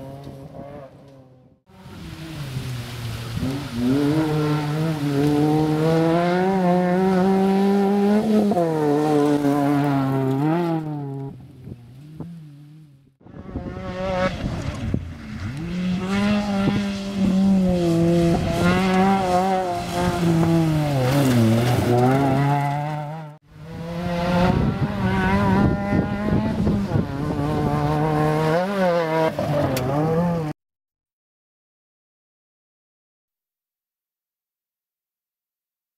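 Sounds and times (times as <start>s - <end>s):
rally car engine revving: 0.0s - 30.6s.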